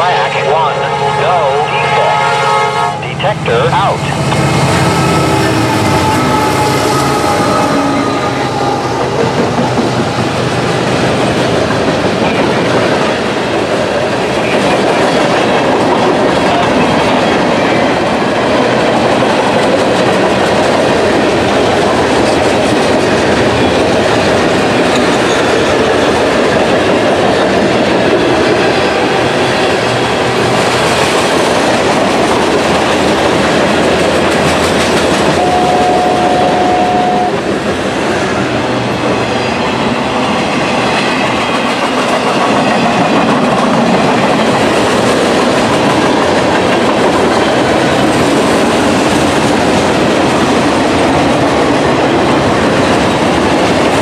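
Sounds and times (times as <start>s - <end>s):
steel train wheels on rail: 1.9s - 54.0s.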